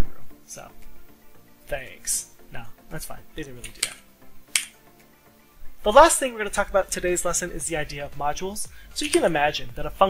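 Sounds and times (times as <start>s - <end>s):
man talking: 0.5s - 0.8s, 1.7s - 4.0s, 5.8s - 10.0s
computer mouse click: 3.7s - 4.8s.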